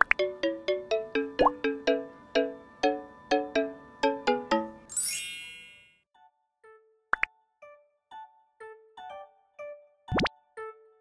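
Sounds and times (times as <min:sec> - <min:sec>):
shimmering chime sweep: 0:04.9 - 0:06.0.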